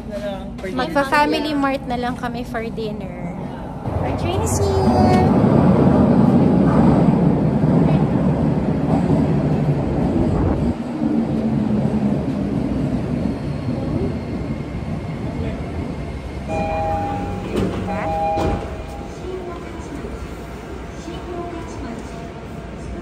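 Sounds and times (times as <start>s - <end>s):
subway train rumbling: 0.0s - 23.0s
door chime tones: 16.5s - 19.1s.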